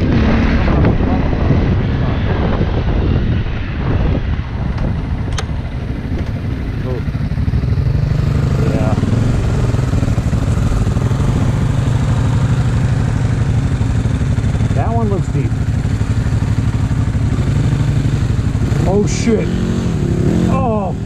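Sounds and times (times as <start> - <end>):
dirt bike engine running: 0.0 - 21.0.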